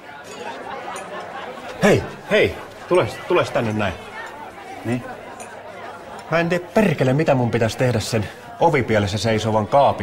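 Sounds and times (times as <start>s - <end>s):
murmur of people chatting: 0.0s - 10.0s.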